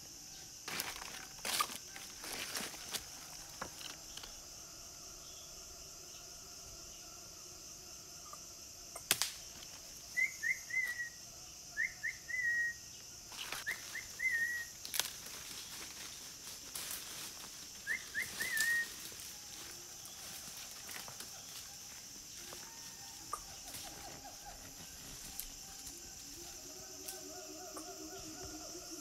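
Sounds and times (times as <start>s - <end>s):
high insect drone: 0.0s - 29.0s
bird whistling call: 13.7s - 14.7s, 17.8s - 18.9s.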